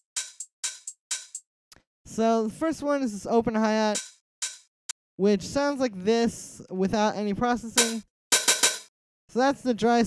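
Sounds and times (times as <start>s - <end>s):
lo-fi hi-hat hits: 0.0s - 1.4s, 4.0s - 4.6s, 7.8s - 8.9s.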